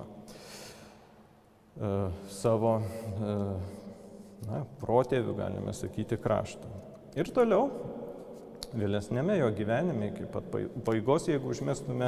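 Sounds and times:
man breathing in: 0.3s - 1.1s
man speaking: 1.8s - 8.0s, 8.6s - 12.0s.

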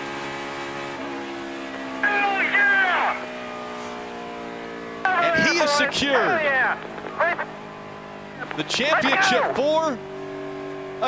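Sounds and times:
race car engine running steadily: 0.0s - 11.0s
man shouting: 2.0s - 3.2s, 5.1s - 7.5s, 8.7s - 9.9s.

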